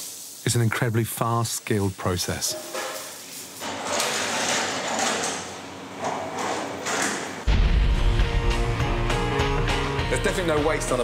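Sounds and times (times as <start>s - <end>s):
music with strong bass line: 7.5s - 11.0s.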